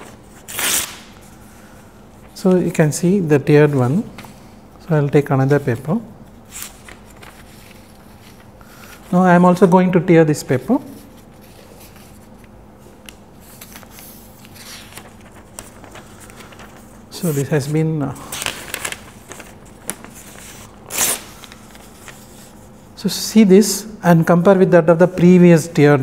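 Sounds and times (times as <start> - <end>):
paper tearing: 0.4 - 1.2, 18.3 - 22.2
paper rustling and creasing: 3.6 - 9.2, 10.9 - 22.8.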